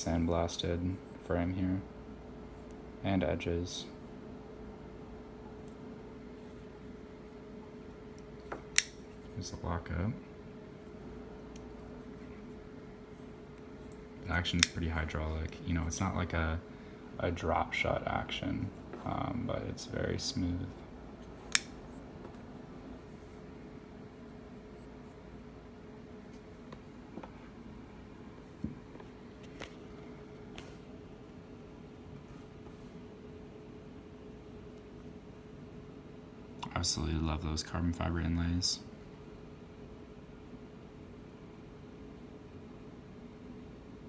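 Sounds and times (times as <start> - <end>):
faint steady hum: 0.0 - 44.0.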